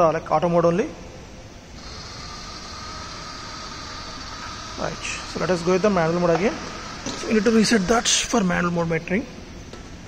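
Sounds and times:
steady hiss: 0.0s - 10.0s
small electric motor whine: 1.8s - 8.3s.

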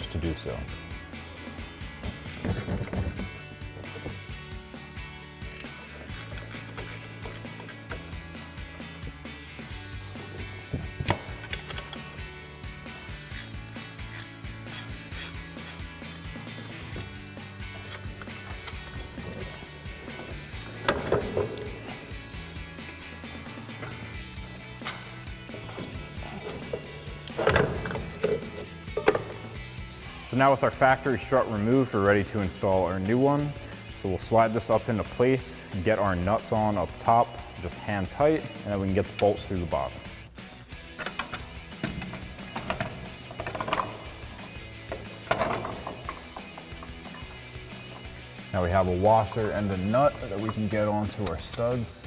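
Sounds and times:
background music: 0.0s - 52.0s
ratcheting wrench clicking: 2.1s - 3.2s, 5.4s - 8.1s, 13.1s - 19.0s.

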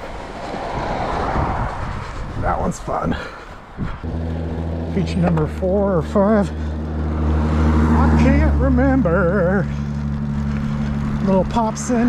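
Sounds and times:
knobby tyres humming on asphalt: 0.0s - 12.0s
bike tyres rolling over grass: 4.0s - 12.0s.

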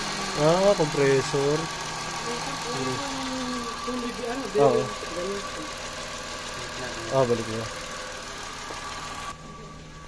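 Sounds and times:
car engine idling: 0.0s - 10.0s.

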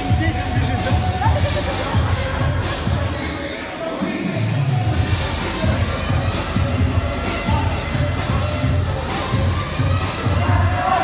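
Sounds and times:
gym music with bass beat: 0.0s - 11.0s
people shouting and cheering: 0.0s - 11.0s.

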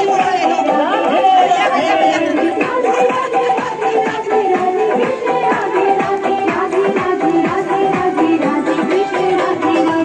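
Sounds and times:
people talking at once: 0.0s - 3.6s
song music: 0.0s - 10.0s.

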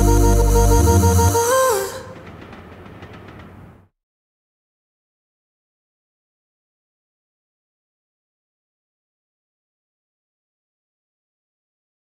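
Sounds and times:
electric train rumbling on tracks: 0.0s - 3.9s
train wheels clicking: 1.2s - 3.9s.

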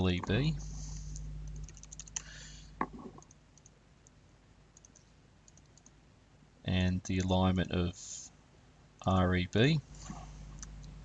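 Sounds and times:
low hum: 0.0s - 3.4s
computer keyboard typing: 1.1s - 2.3s, 4.8s - 5.9s
mouse clicks: 4.8s - 6.0s.

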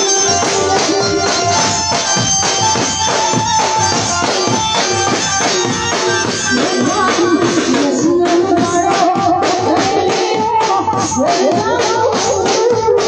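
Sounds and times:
keyboard melody: 0.0s - 11.8s
fast steady drumming: 0.0s - 13.0s.

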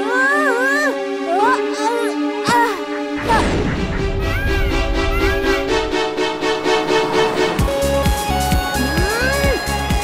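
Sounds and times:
background music: 0.0s - 10.0s
cartoon crash with low rumble: 3.2s - 7.7s.

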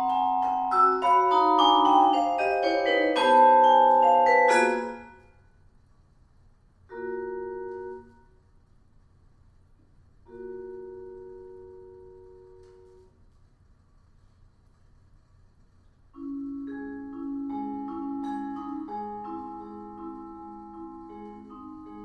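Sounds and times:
vibraphone chords: 0.0s - 5.2s, 16.2s - 22.0s.

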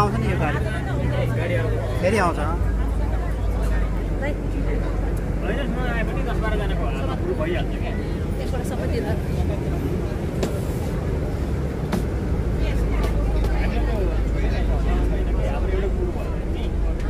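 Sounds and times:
bus engine rumble inside cabin: 0.0s - 17.0s
passengers talking indistinctly: 0.0s - 17.0s.

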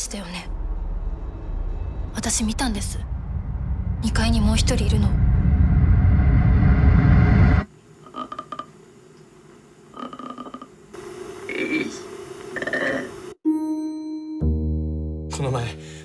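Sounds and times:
loud low rumble: 0.0s - 7.6s.

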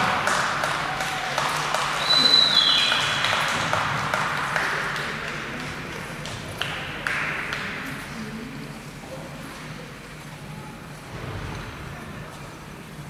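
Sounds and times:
crowd applause: 0.0s - 8.6s.

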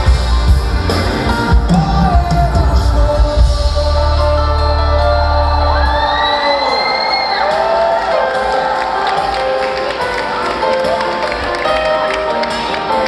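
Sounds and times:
high rising whoop: 4.8s - 8.5s
audience cheering: 4.8s - 12.9s.

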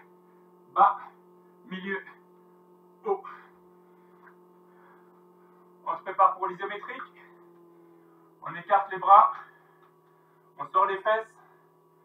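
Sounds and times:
low electrical hum: 0.0s - 12.0s
man speaking: 0.7s - 2.2s, 3.0s - 3.5s, 5.8s - 7.4s, 8.4s - 9.5s, 10.6s - 11.4s.

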